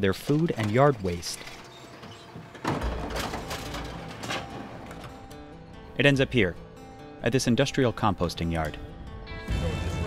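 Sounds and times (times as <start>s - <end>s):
garbage truck rumble: 0.0s - 6.0s.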